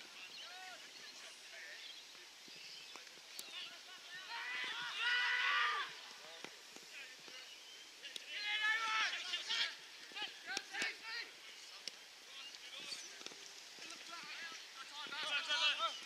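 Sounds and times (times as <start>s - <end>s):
distant players shouting: 3.6s - 6.2s, 8.2s - 11.4s, 13.9s - 16.0s.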